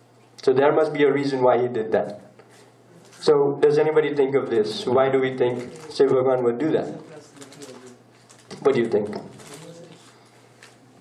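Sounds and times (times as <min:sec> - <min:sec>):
steady low hum: 0:00.0 - 0:11.0
man speaking: 0:03.2 - 0:09.6.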